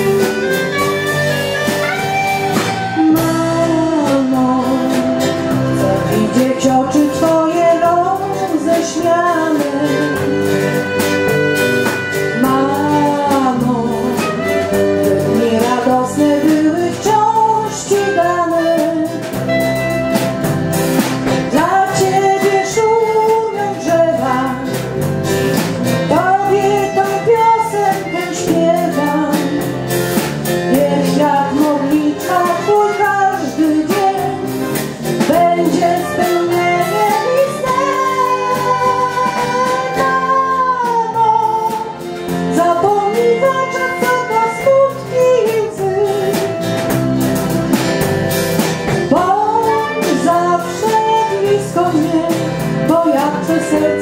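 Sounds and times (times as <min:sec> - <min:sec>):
band with guitar: 0:00.0 - 0:54.0.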